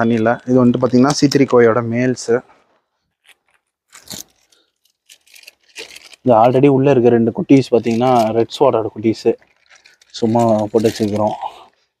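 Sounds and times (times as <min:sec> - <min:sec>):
plastic bag crinkling: 0:02.5 - 0:06.7, 0:07.5 - 0:11.9.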